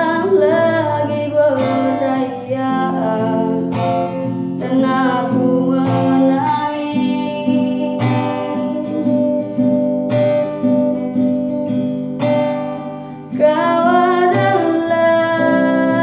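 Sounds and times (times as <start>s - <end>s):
person singing: 0.0s - 3.8s, 4.6s - 9.8s, 13.3s - 16.0s
acoustic guitar strumming: 0.0s - 16.0s.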